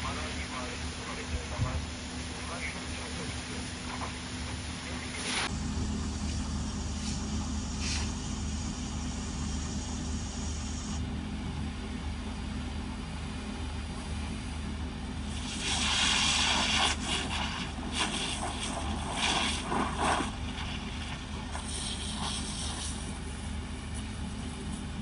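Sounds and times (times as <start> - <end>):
engine running steadily: 0.0 - 25.0
fire hose water jet hissing: 2.4 - 5.5, 6.8 - 11.0, 15.3 - 23.2.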